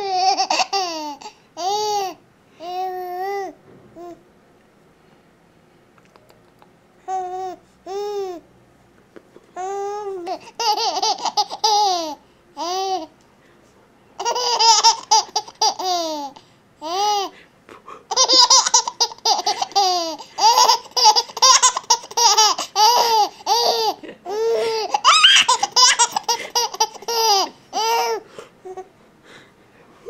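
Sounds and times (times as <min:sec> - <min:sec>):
baby laughing: 0:00.0 - 0:02.2, 0:09.6 - 0:13.1, 0:14.2 - 0:17.4, 0:18.1 - 0:28.9.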